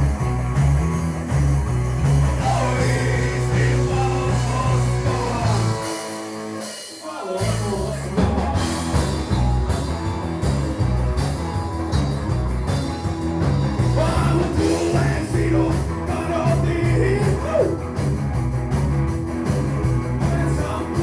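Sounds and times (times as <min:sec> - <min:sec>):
rock band playing: 0:00.0 - 0:21.0
person singing: 0:02.4 - 0:06.0, 0:07.0 - 0:09.0, 0:13.9 - 0:17.8, 0:20.2 - 0:21.0.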